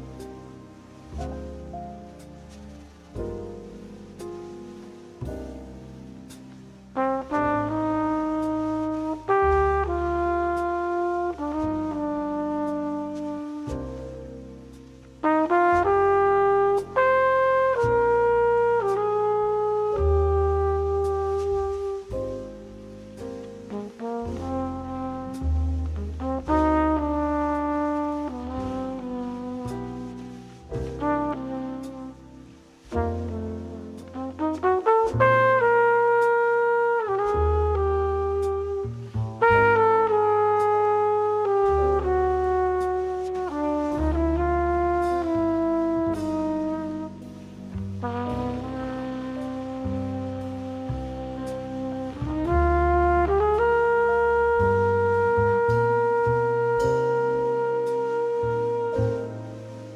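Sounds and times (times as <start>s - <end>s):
bass line: 0.0s - 59.9s
trumpet playing slow melody: 0.0s - 59.9s.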